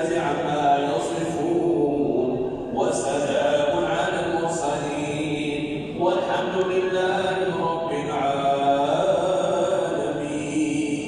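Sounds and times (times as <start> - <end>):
melodic religious chanting: 0.0 - 11.0.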